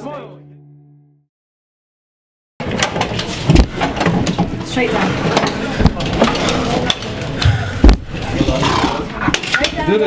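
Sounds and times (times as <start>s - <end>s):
heavy thump: 7.5s - 8.2s.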